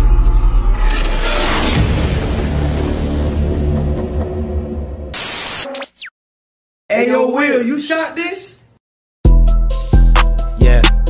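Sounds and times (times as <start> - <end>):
static burst: 5.2 - 6.1
man speaking: 6.9 - 8.7.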